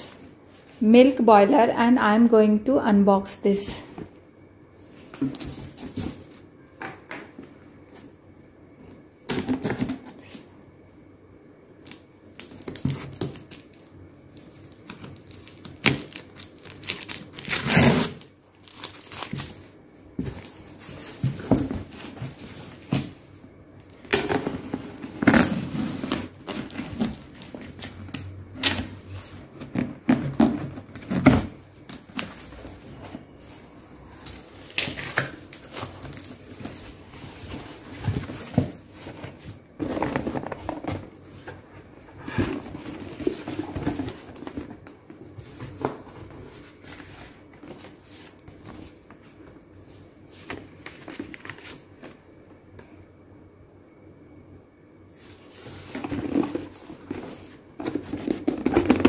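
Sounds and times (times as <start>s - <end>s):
cardboard box being torn open: 15.5s - 19.4s.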